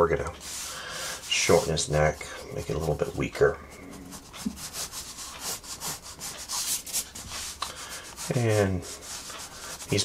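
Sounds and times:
pencil scratching on paper: 0.4s - 10.0s.

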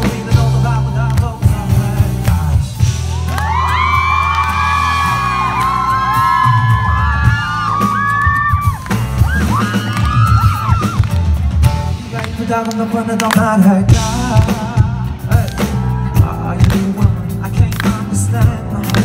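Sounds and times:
drums: 0.0s - 19.0s
keyboard: 0.0s - 19.0s.

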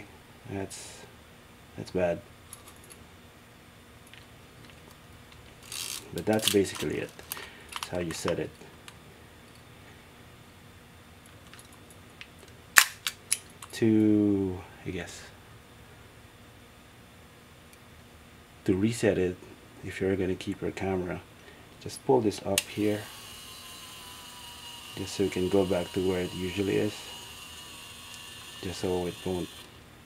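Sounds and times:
camera self-timer whirring: 22.5s - 29.9s.

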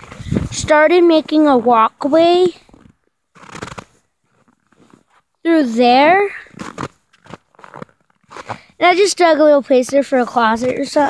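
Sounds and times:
footstep crunching on snow: 0.0s - 5.3s, 6.4s - 9.1s.

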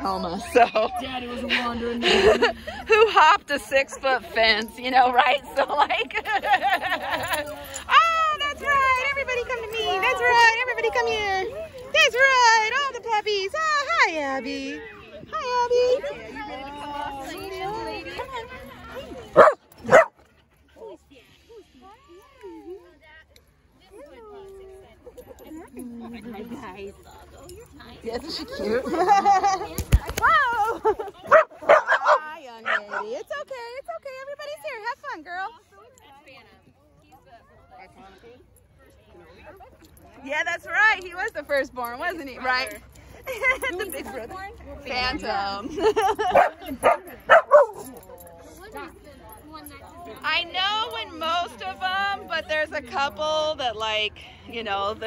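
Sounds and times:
voices: 0.0s - 55.0s
dog barking: 19.4s - 20.1s, 31.3s - 33.1s, 46.4s - 47.8s.

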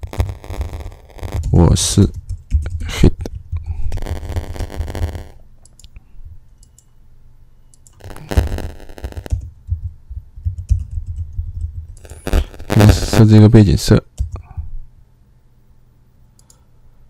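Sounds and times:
keyboard typing: 0.0s - 6.9s, 7.7s - 12.9s, 14.2s - 14.6s.

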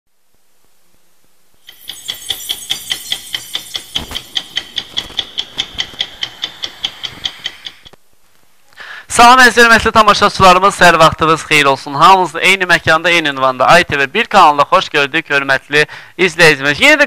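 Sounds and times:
clock ticking: 1.7s - 8.0s.

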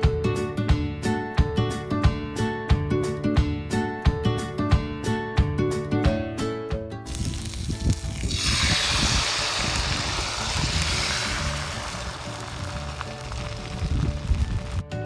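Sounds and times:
guitar background music: 0.0s - 15.0s
batter sizzling in hot oil: 7.1s - 14.8s.

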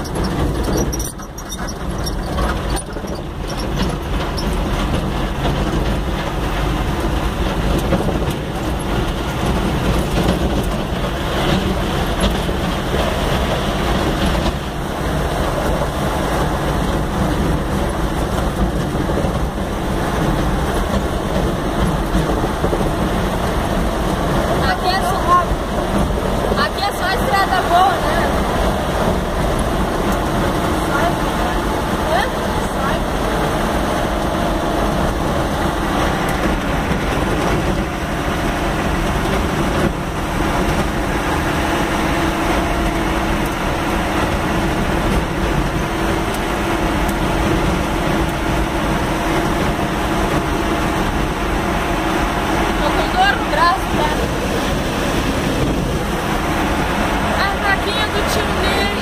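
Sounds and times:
vehicle engine and tyre noise: 0.0s - 59.0s.

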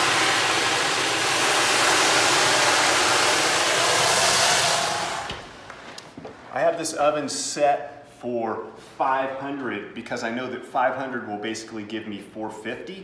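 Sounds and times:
water hissing into steam: 0.0s - 5.4s.

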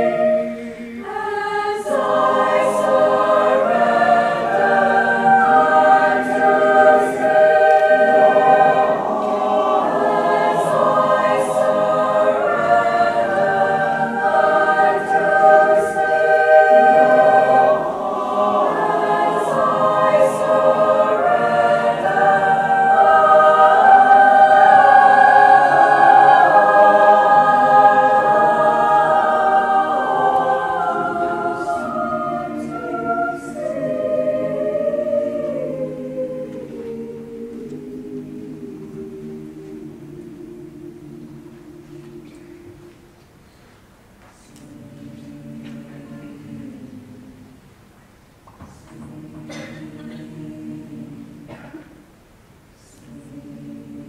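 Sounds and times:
choir singing held chords: 0.0s - 54.0s.

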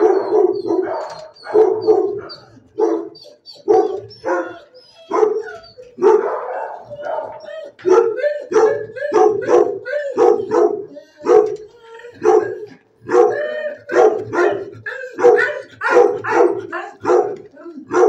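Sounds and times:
dog barking: 0.0s - 11.6s, 12.2s - 18.0s.

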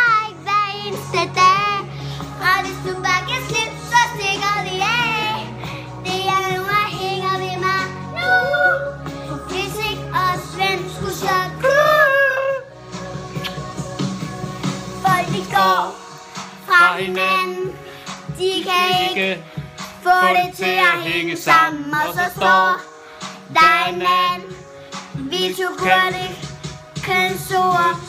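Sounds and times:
girl singing: 0.0s - 12.7s, 14.9s - 16.0s, 16.6s - 19.4s, 20.0s - 22.9s, 23.5s - 28.0s
recorded backing music: 0.0s - 28.0s.

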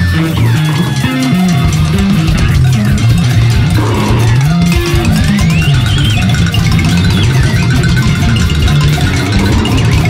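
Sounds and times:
rock band music: 0.0s - 10.0s.

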